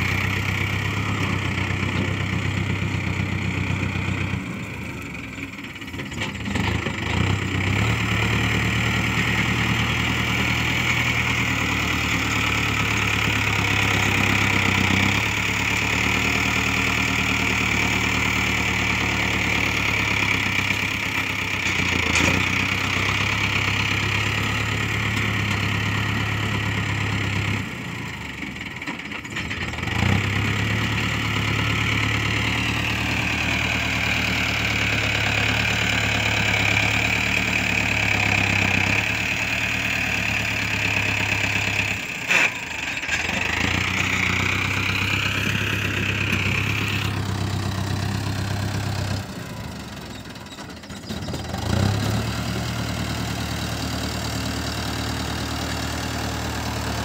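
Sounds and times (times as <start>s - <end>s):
diesel tractor engine running: 0.0s - 57.0s.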